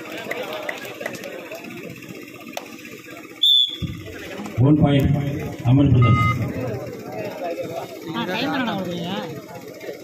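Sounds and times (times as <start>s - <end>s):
brief high beep: 5.9s - 6.6s.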